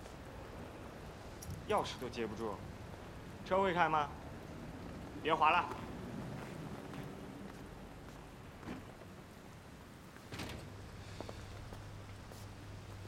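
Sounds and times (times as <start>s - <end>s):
light rain: 0.0s - 13.0s
low steady hum: 0.0s - 13.0s
footsteps: 4.8s - 9.1s, 11.0s - 13.0s.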